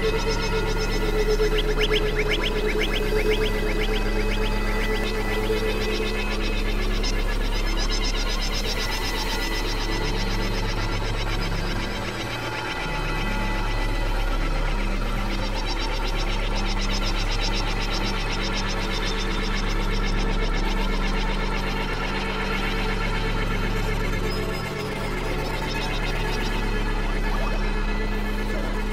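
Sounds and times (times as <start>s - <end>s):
deep bass synthesizer tone: 0.0s - 28.9s.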